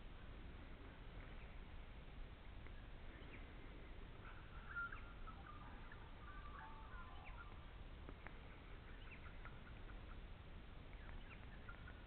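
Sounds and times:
low steady rumble: 0.0s - 12.0s
small birds chirping: 0.8s - 12.0s.

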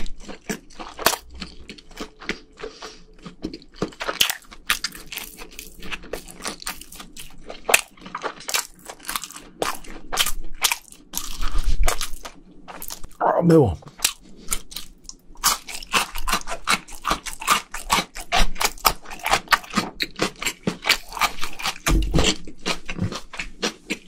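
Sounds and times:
chewing with mouth clicks: 0.0s - 13.2s, 13.9s - 24.0s.

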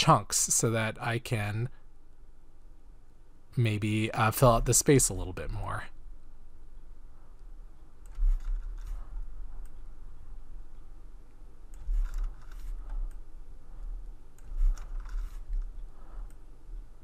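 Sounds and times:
steady low hum: 0.0s - 17.0s
computer mouse clicking: 7.4s - 9.9s, 11.7s - 16.5s.

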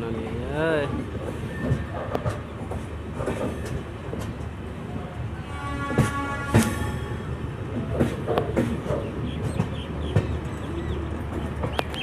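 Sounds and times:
train coach running noise: 0.0s - 12.0s
wheels clicking over rail joints: 0.2s - 4.7s, 7.7s - 12.0s.

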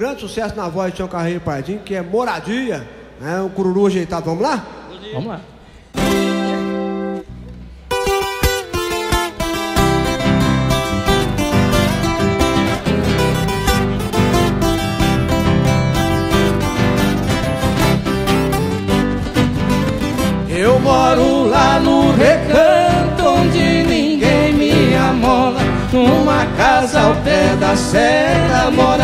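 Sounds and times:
viola and acoustic guitar: 5.8s - 29.0s
electric bass: 6.0s - 29.0s
man singing: 20.4s - 29.0s.

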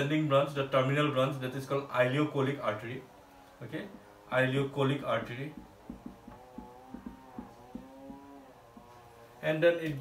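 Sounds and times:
marker squeaking on whiteboard: 5.6s - 8.4s.

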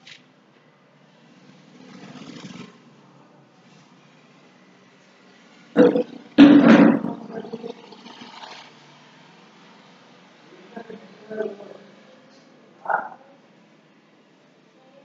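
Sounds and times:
rough bursts of a person's voice: 5.8s - 8.4s, 10.4s - 12.2s.

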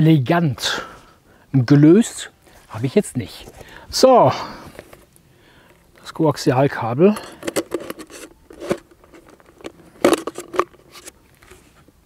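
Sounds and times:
plastic bottle crinkling: 7.2s - 11.6s.

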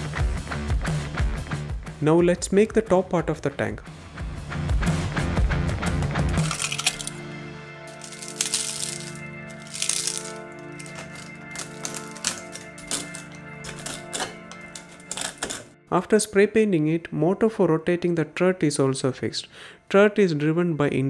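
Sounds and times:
background music sustained tones: 3.8s - 19.9s
plastic clicking and crackling: 8.0s - 15.7s.

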